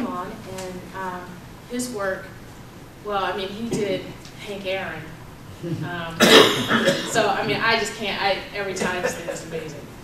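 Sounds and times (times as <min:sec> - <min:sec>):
loud cough: 0:06.2 - 0:07.3.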